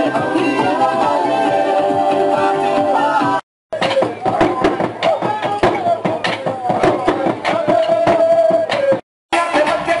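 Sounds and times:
large drums beaten hard: 3.2 - 10.0.

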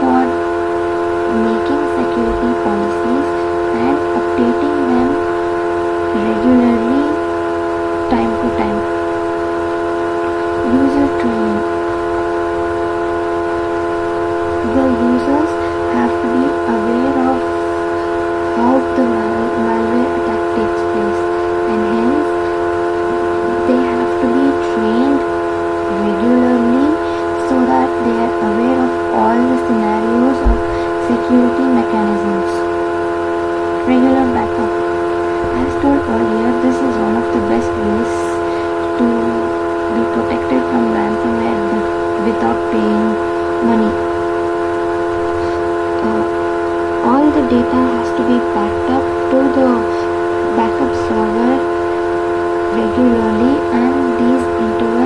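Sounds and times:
loud chord-like hum: 0.0 - 55.0
faint person's voice: 46.0 - 46.3.

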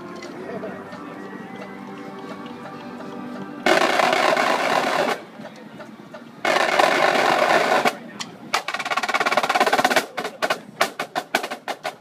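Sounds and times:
marching drumline rolls: 0.0 - 12.0.

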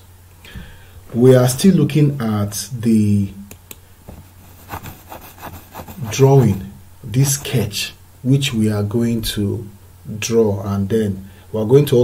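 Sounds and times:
faint scraping strokes: 4.3 - 7.7.

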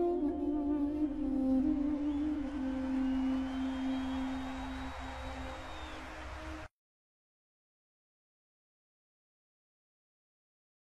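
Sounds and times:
double-reed wind instrument note: 0.0 - 6.5.

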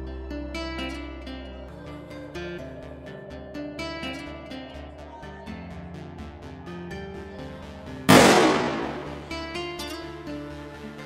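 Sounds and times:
acoustic guitar music: 0.0 - 1.6, 3.6 - 4.6, 8.3 - 11.0.

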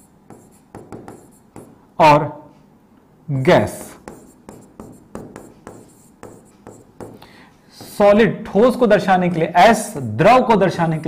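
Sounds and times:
pen scratching on writing board: 0.0 - 1.8, 3.7 - 7.2, 7.8 - 8.2.

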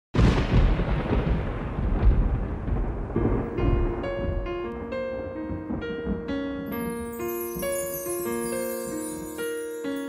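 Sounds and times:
electronic thunder crash and rumble: 0.2 - 6.3
electric piano notes: 3.6 - 10.0.

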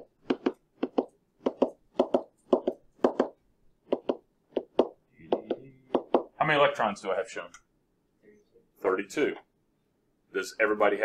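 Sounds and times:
pen tapping on whiteboard: 0.0 - 6.3.

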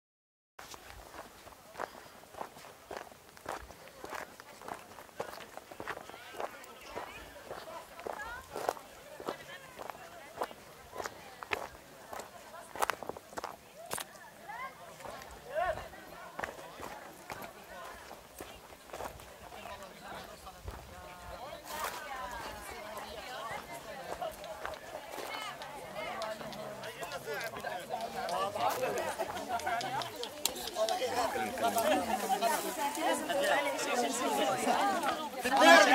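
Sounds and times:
footsteps crunching on gravel: 0.6 - 14.2, 14.9 - 35.9
chatter of many voices: 0.8 - 35.9.

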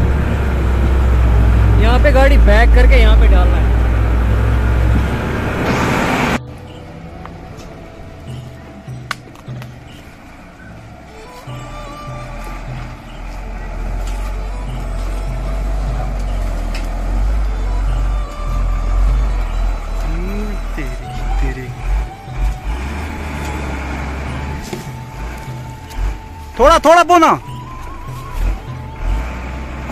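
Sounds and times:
diesel truck engine labouring: 0.0 - 29.9.

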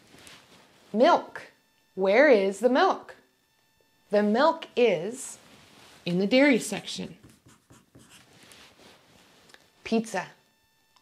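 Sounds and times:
marker pen scratching: 6.6 - 8.4.

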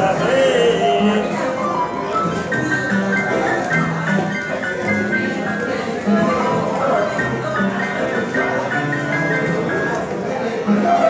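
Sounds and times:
upright piano melody: 0.0 - 11.0.

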